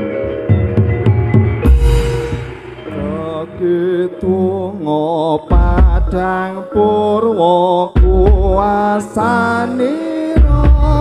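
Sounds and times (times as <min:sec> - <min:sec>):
gamelan music: 0:00.0 - 0:07.3.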